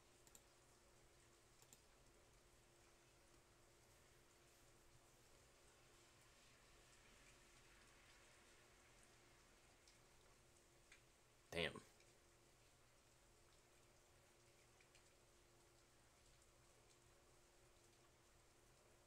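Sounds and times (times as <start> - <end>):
faint steady hum: 0.0 - 19.0
faint clicks: 0.2 - 0.6, 1.5 - 1.9, 10.9 - 11.1, 13.5 - 15.2.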